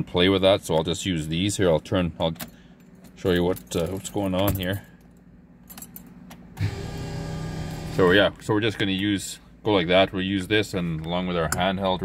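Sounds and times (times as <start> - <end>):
small electric motor whirring: 6.6 - 8.1.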